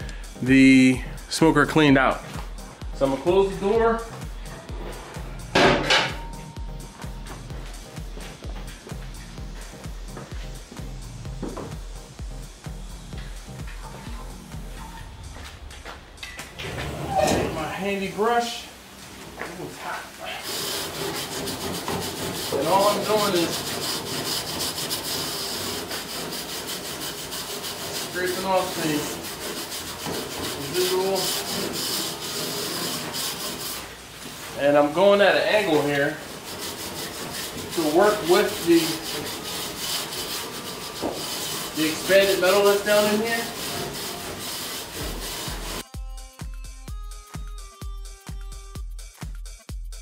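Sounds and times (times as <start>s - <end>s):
music with deep beat: 0.0s - 16.6s, 45.0s - 50.0s
grill brush scraping metal grate: 20.2s - 45.8s.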